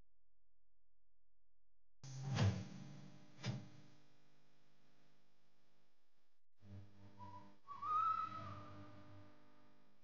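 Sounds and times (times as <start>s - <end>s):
person whistling: 7.2s - 8.6s.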